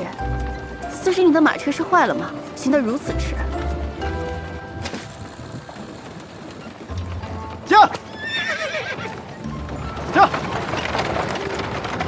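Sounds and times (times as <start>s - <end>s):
background music: 0.0s - 12.0s
horse whinnying: 7.7s - 11.0s.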